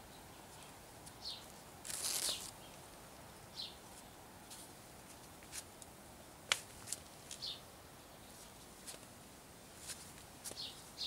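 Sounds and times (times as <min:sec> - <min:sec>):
bird chirp: 0:00.0 - 0:01.5, 0:02.2 - 0:04.2, 0:07.4 - 0:08.4, 0:10.5 - 0:11.0.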